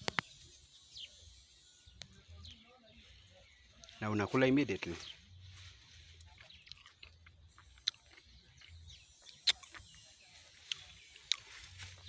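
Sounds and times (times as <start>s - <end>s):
man chewing: 6.1s - 12.0s
mouth clicks and smacks: 6.4s - 10.0s, 10.6s - 11.5s.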